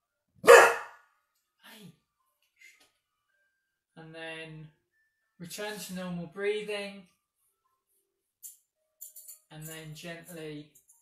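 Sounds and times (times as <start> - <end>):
dog barking: 0.4 - 1.0.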